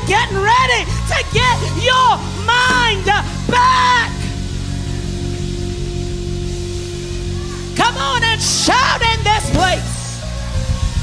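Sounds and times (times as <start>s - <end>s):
low bass notes: 0.0s - 11.0s
sustained note: 2.2s - 9.6s.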